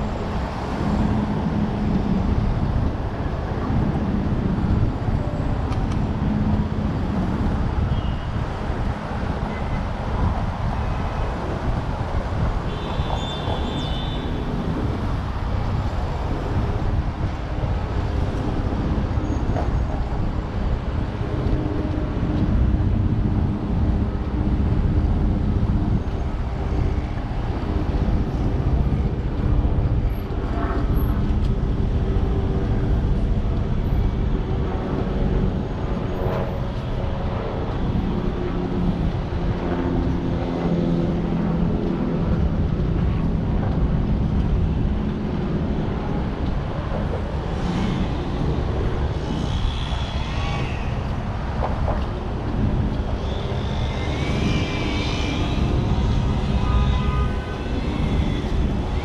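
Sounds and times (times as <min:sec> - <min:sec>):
road traffic rumble: 0:00.0 - 0:59.0.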